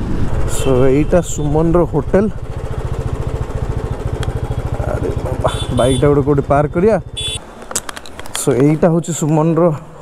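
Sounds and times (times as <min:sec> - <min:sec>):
motorcycle engine running: 0:00.0 - 0:07.4.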